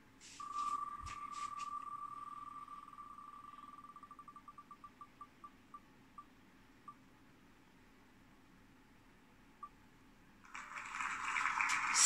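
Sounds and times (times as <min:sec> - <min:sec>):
applause sound effect: 0:10.5 - 0:12.0.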